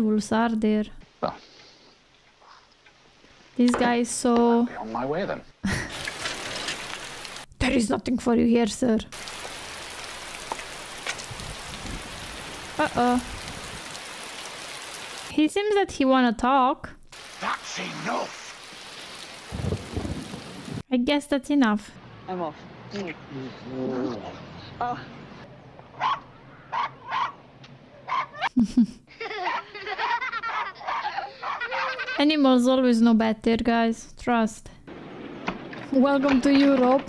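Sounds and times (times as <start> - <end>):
rain falling: 5.7 - 7.8, 9.1 - 15.4, 17.1 - 20.8, 34.9 - 37.0
dog barking: 26.0 - 27.4, 28.0 - 28.5, 30.5 - 31.9.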